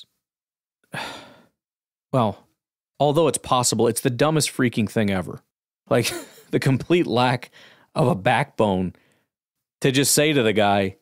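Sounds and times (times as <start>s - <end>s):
man breathing into microphone: 7.5s - 7.9s.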